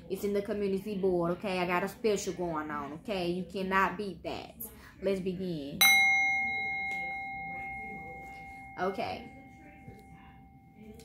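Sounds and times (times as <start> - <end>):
small metal bell ringing: 5.8 - 11.0.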